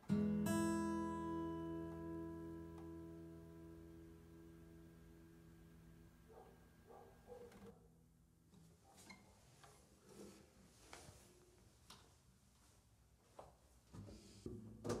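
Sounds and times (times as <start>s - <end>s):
acoustic guitar chord ringing: 0.0s - 6.2s
guitar handling knocks and rustles: 13.9s - 15.0s.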